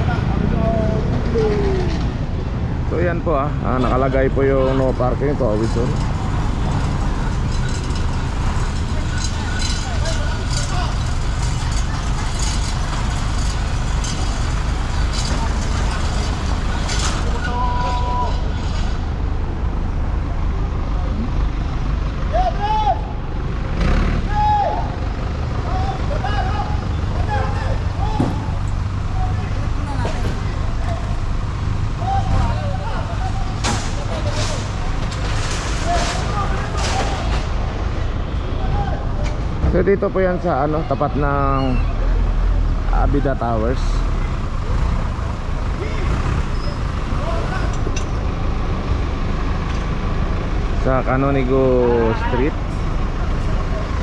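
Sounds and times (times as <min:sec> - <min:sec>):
people talking: 0:00.0 - 0:02.1, 0:02.9 - 0:06.0, 0:08.8 - 0:13.0, 0:25.6 - 0:31.2, 0:32.0 - 0:34.7, 0:35.8 - 0:37.4, 0:38.5 - 0:42.3, 0:42.9 - 0:44.1, 0:50.8 - 0:52.6
vehicle engine idling: 0:00.0 - 0:54.0.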